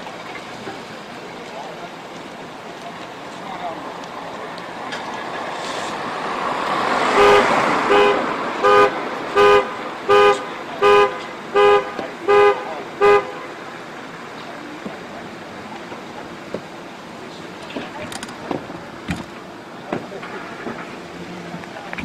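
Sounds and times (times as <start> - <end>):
rushing noise: 1.9 - 11.6
vehicle horn short blasts: 7.1 - 13.5.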